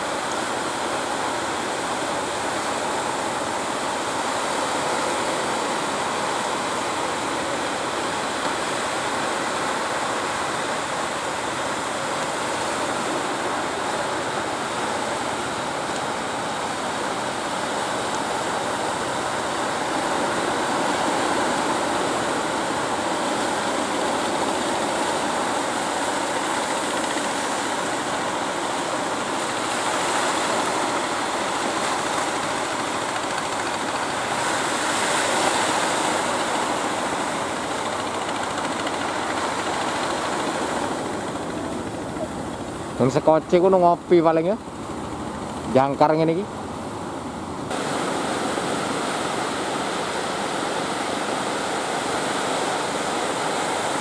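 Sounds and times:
surf breaking on shore: 0.0s - 54.0s.

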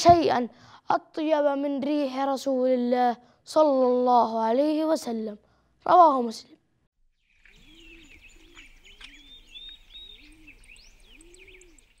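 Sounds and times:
small birds chirping: 7.1s - 12.0s
low repeated arched calls: 7.2s - 12.0s.

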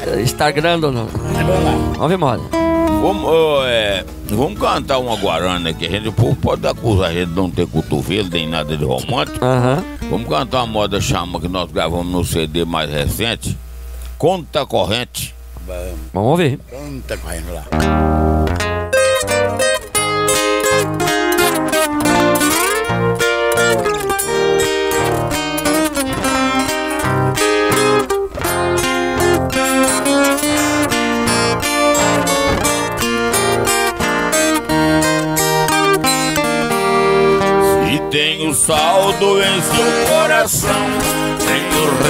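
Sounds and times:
viola picking melody: 0.0s - 11.8s, 17.7s - 42.0s
acoustic guitar strumming: 0.0s - 16.1s, 17.1s - 42.0s.

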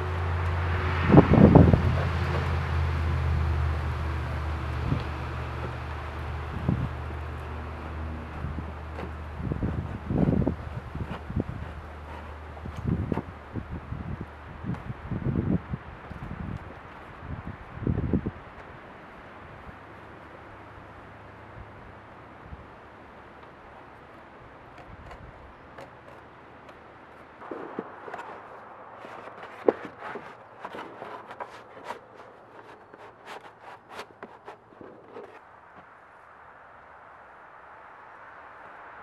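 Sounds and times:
roofing felt crinkling: 1.7s - 13.8s, 24.1s - 35.4s.

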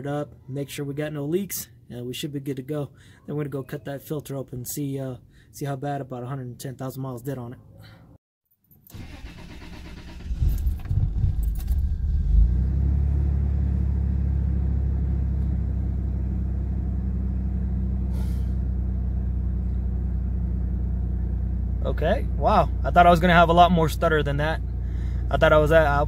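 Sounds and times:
starter motor cranking: 8.9s - 12.0s
engine idling fast: 22.0s - 26.0s.

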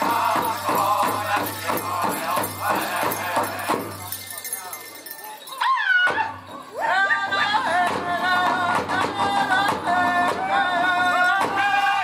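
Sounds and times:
big drum beaten quickly: 0.0s - 4.1s
group singing: 0.0s - 4.2s, 6.7s - 12.0s.

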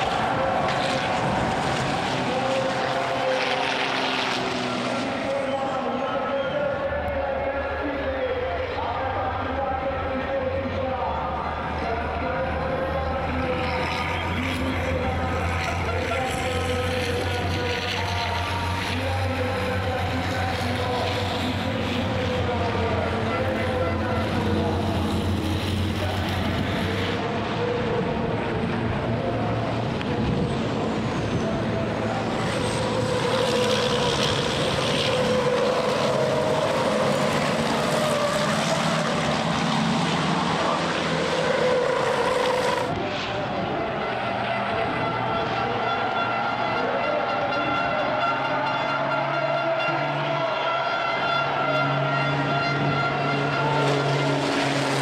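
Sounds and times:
racing truck engines passing: 0.0s - 55.0s.

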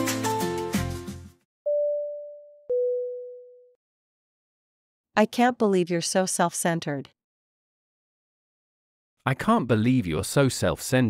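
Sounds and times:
background music: 0.0s - 2.0s
electronic two-note chime: 1.7s - 3.7s.

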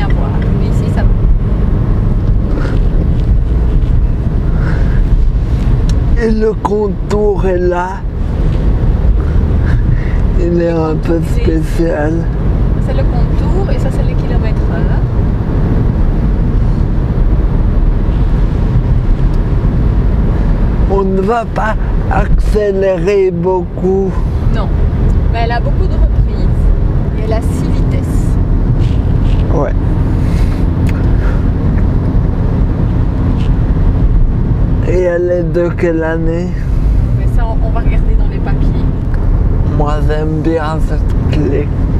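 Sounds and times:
engine and road noise in car cabin: 0.0s - 41.9s.

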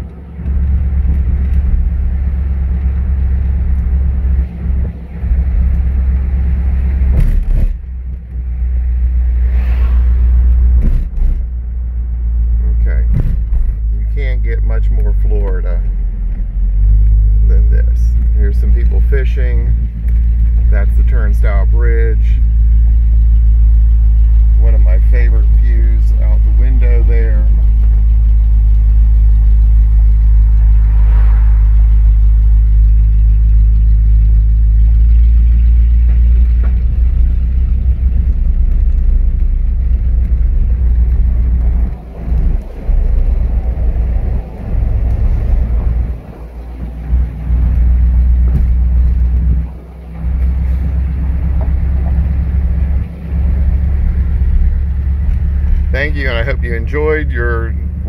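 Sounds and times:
car engine and road rumble: 0.0s - 58.0s.

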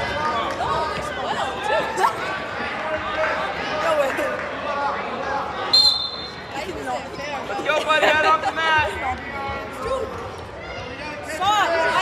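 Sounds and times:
spectators chatting: 0.0s - 12.0s
referee whistle blast: 5.7s - 6.5s.

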